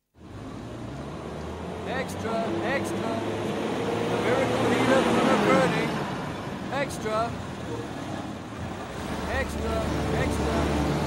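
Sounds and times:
man calling out: 0:01.8 - 0:03.4, 0:06.7 - 0:07.4, 0:09.2 - 0:10.8.

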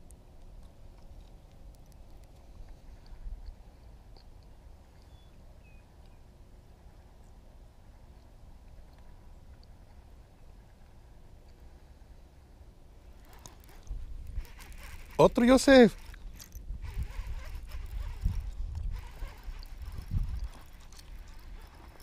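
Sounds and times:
faint ticks: 0:00.0 - 0:05.4, 0:08.1 - 0:11.6, 0:16.0 - 0:22.0.

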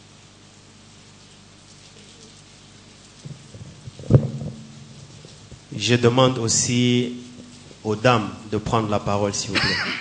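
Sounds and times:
microphone handling thump: 0:03.2 - 0:05.7
soft microphone knocks: 0:03.2 - 0:05.7.

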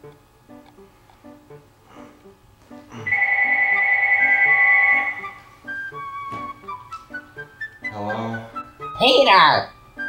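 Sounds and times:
mobile phone ringing: 0:03.1 - 0:06.0.

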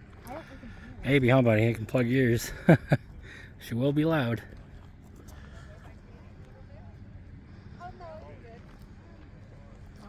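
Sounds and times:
distant chatter of bystanders: 0:00.0 - 0:10.0
low steady background rumble: 0:00.0 - 0:10.0.

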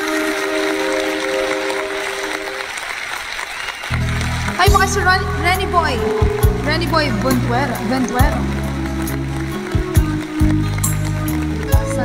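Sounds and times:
music holding a steady chord: 0:00.0 - 0:02.8, 0:04.0 - 0:12.0
applause-like hiss: 0:00.0 - 0:05.1.

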